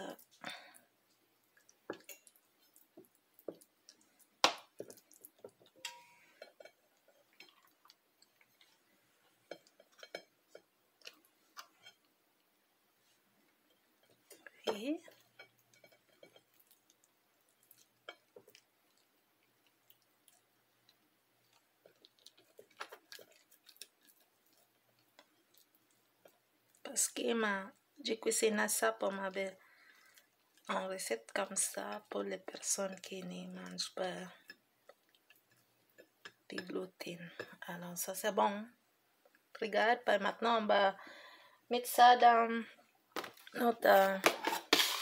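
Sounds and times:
cutlery tapping on plate: 0:04.4 - 0:06.8
cutlery clink: 0:05.8 - 0:06.8, 0:44.3 - 0:45.0.

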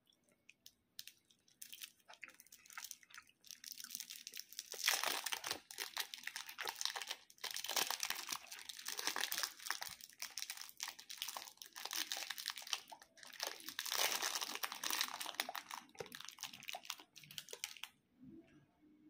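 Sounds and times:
plastic wrapper crinkling: 0:00.6 - 0:17.9.

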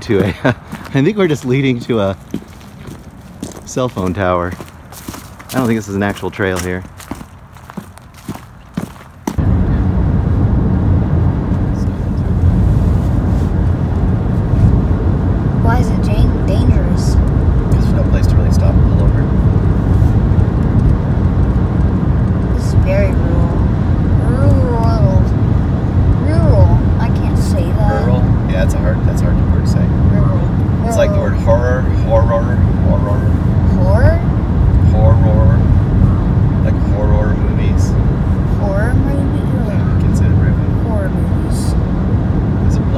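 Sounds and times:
car cabin road and engine rumble: 0:00.0 - 0:42.9.

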